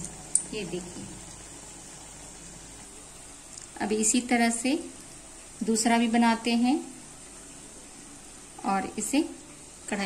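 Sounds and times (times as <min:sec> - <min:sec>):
batter sizzling in hot oil: 0:00.0 - 0:10.0.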